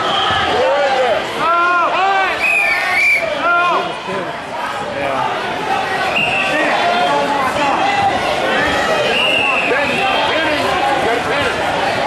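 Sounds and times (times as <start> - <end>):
spectators shouting: 0.0 - 12.0.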